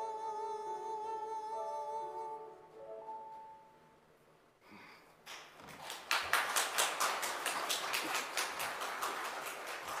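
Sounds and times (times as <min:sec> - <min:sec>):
audience applauding: 0:05.3 - 0:10.0.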